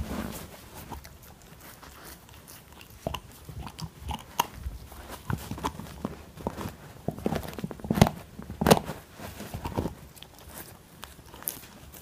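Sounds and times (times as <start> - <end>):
puppy gnawing on bone: 0.5 - 12.0.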